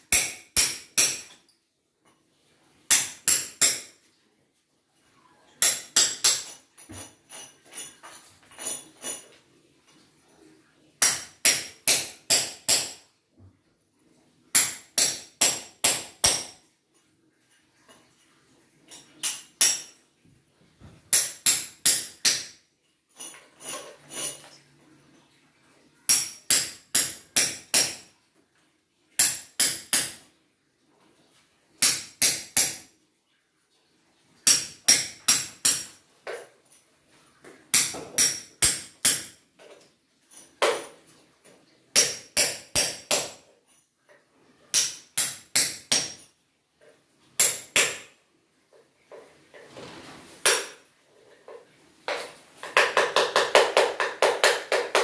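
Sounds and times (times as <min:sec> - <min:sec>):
hammer chipping concrete: 0:00.1 - 0:01.4.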